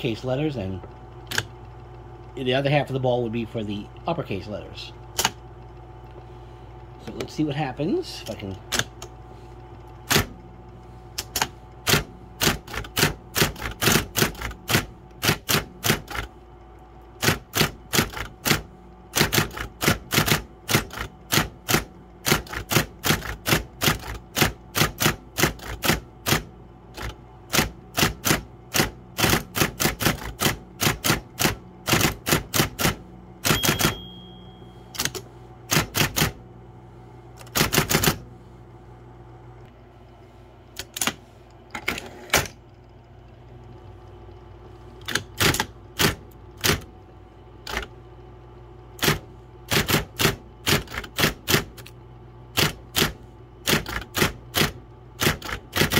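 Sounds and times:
typewriter motor humming: 0.0 - 36.4, 37.4 - 38.2, 43.6 - 48.0, 48.8 - 55.9
typewriter keystrokes: 1.3 - 1.5, 5.2 - 5.4, 10.0 - 10.4, 11.2 - 16.3, 17.2 - 34.1, 35.0 - 36.4, 37.4 - 38.2, 45.0 - 46.9, 47.6 - 47.9, 49.0 - 51.9, 52.5 - 55.9
brief high tone: 33.5 - 34.9.

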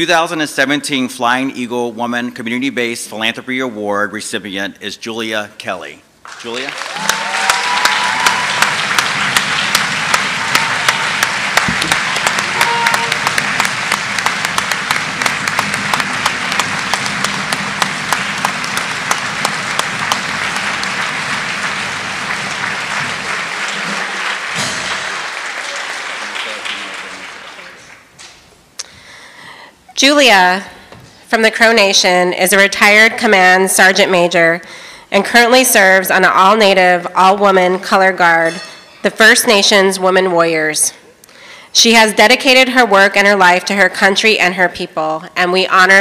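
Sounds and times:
audience applauding: 6.2 - 28.5.

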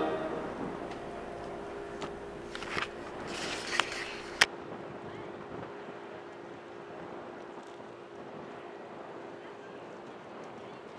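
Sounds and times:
low hum of passing ship: 0.0 - 10.9
wind buffeting microphone: 0.0 - 10.9.

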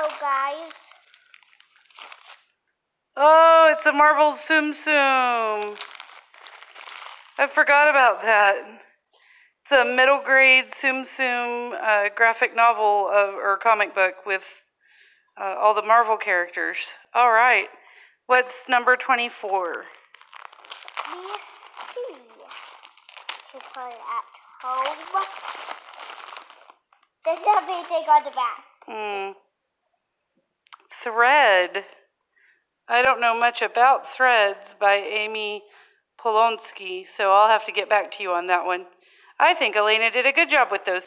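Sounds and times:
person speaking: 0.0 - 1.2, 20.9 - 26.4, 27.2 - 29.4
wrapping paper tearing: 0.0 - 2.6, 5.6 - 7.4, 19.8 - 27.9.

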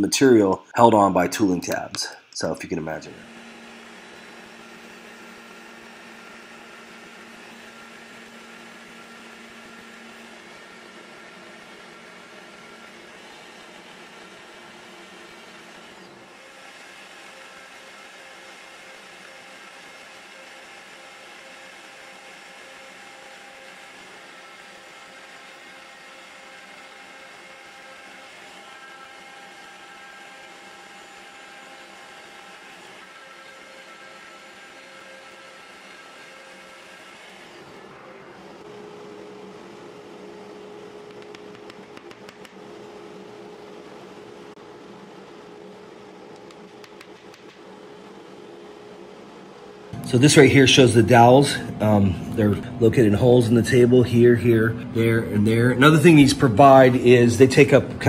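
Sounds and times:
cnc mill spindle whine: 3.0 - 58.0.

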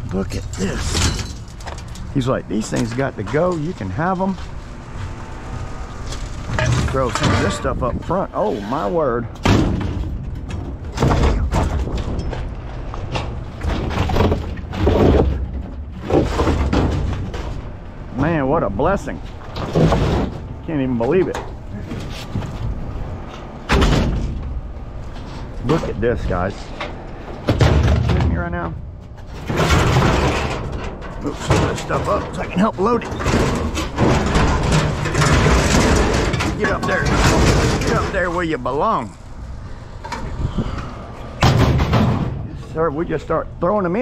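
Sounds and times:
low rumbling: 0.0 - 44.0
sheet metal scraping and rattling: 0.1 - 39.3, 40.0 - 43.4
scrap thudding in trailer bed: 19.5 - 20.6, 29.3 - 38.2, 41.4 - 42.5.

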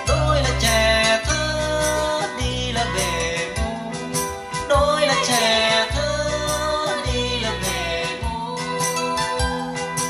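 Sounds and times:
ballad over speakers: 0.0 - 10.0
bass notes: 0.0 - 10.0.

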